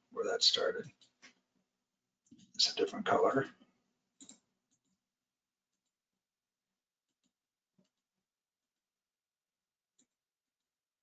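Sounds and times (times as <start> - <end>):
computer mouse clicks: 4.2 - 5.0.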